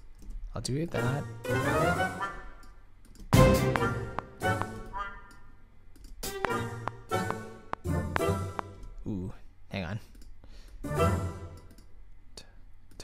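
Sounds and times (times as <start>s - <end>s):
orchestral music: 1.0s - 2.6s, 3.4s - 5.2s, 6.2s - 8.9s, 10.8s - 11.7s.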